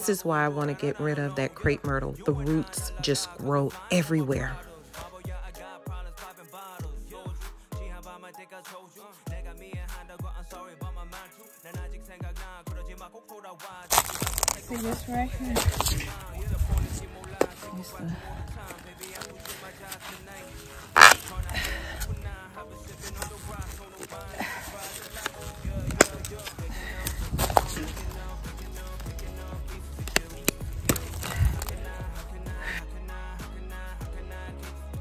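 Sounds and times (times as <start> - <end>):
background music with singing: 0.0 - 35.0
shovel and loppers cutting roots: 13.9 - 32.3.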